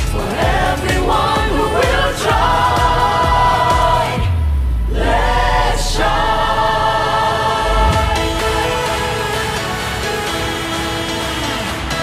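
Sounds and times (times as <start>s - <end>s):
choir holding a chord: 0.0s - 11.9s.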